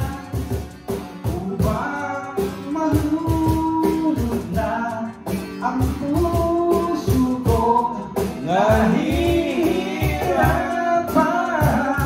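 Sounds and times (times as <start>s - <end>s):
drum beat: 0.0s - 12.0s
guitar: 0.0s - 12.0s
person singing karaoke: 0.0s - 12.0s.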